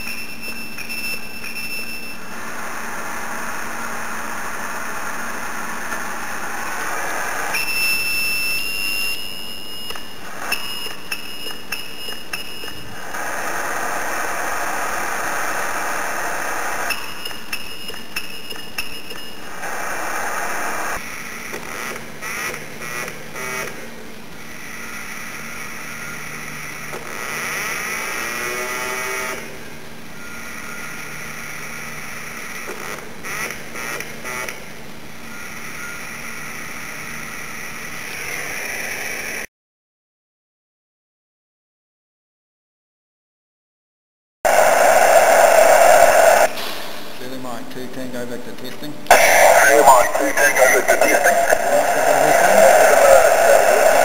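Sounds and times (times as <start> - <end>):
high radio tone: 44.5 - 46.6, 49.1 - 54.0
radio hiss: 44.5 - 54.0.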